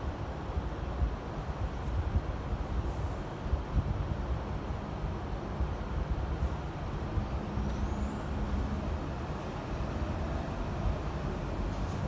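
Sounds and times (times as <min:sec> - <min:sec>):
faint high whistle rising: 0:07.4 - 0:11.6.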